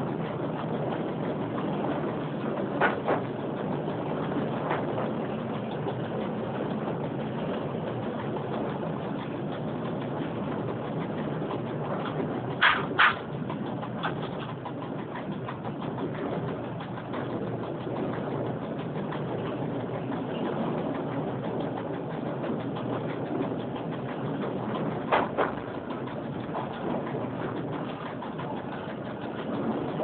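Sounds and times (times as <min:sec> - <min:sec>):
train wheels rolling on rails: 0:00.0 - 0:30.0.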